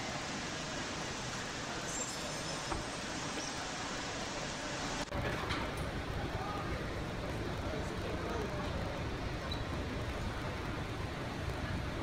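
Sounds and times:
airport terminal ambience: 0.0s - 12.0s.

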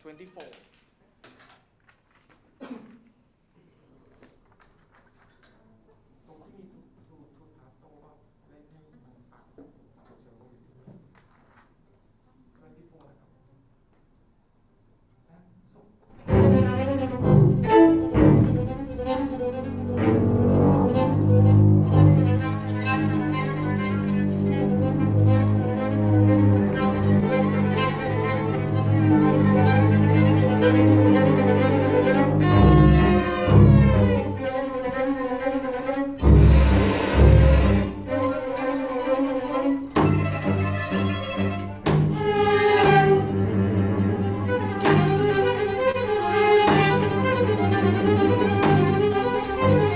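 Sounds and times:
string orchestra playing: 16.2s - 49.9s.

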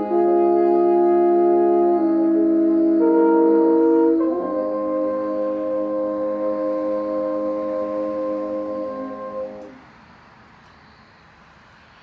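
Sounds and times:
french horns sustaining a chord: 0.0s - 10.0s
faint background noise: 0.0s - 12.0s.

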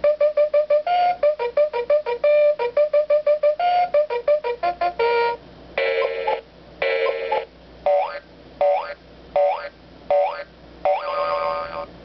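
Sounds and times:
electronic alarm sound effects: 5.8s - 11.8s.

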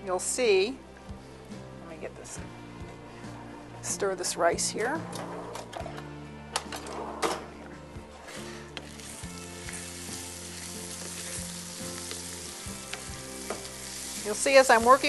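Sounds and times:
rice sizzling in a saucepan: 8.8s - 15.0s.

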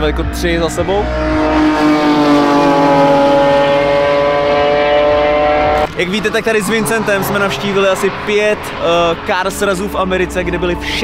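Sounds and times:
race car engines at speed: 0.0s - 11.0s.

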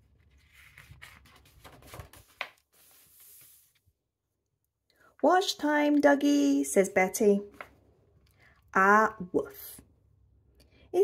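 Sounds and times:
paper rustling: 0.0s - 3.9s
paper swish: 0.5s - 3.8s.

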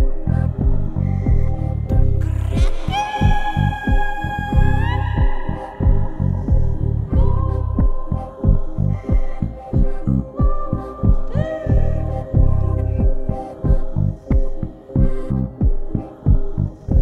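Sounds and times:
deep throbbing electronic pulse: 0.0s - 17.0s.

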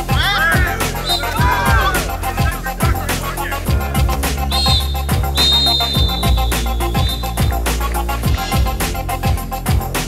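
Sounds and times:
electronic music with heavy beat: 0.0s - 10.0s
referee's whistle blast: 0.1s - 2.5s, 4.3s - 7.7s.

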